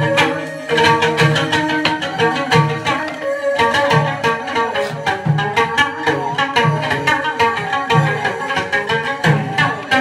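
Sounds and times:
steady percussion beat: 0.0 - 10.0
strings playing: 0.0 - 10.0.

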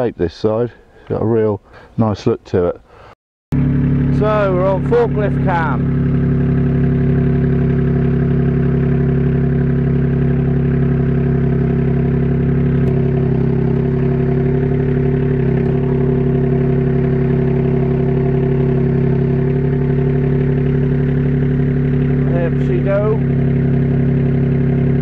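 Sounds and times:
forklift engine running: 3.5 - 25.0.

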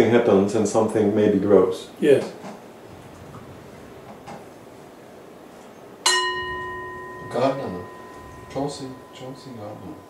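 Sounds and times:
bell ringing: 6.0 - 10.0.

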